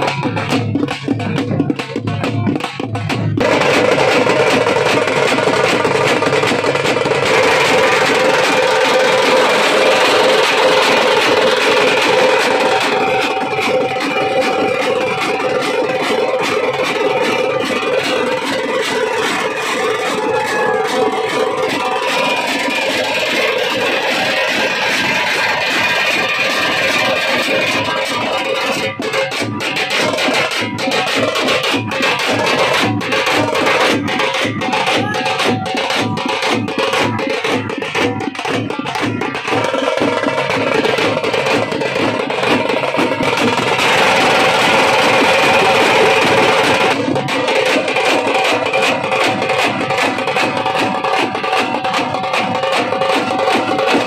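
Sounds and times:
drums beaten fast with sticks: 0:00.0 - 0:54.0.

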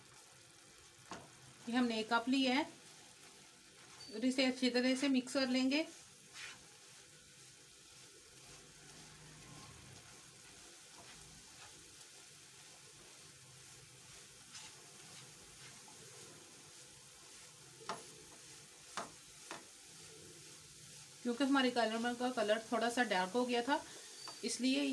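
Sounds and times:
faint sizzling in a pan: 0:00.0 - 0:24.9
spatula stirring and scraping pan: 0:00.0 - 0:24.9.

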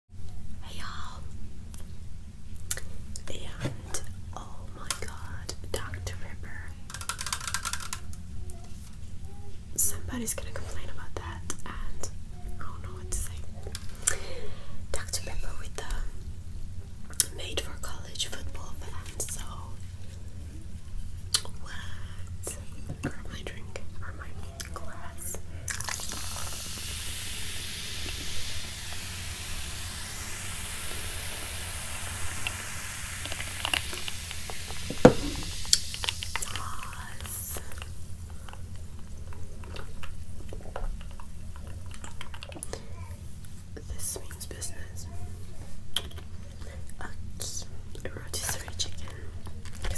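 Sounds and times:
soda fizzing in a glass: 0:25.7 - 0:37.4
sharp knock: 0:34.9 - 0:35.5.

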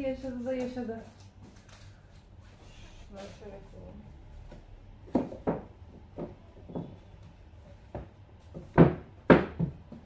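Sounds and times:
books knocking on a bookshelf: 0:05.0 - 0:07.0, 0:07.8 - 0:10.0.

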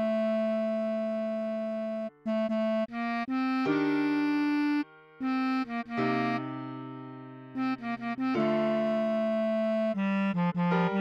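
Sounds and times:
bass clarinet tone: 0:00.0 - 0:06.5, 0:07.6 - 0:11.0.

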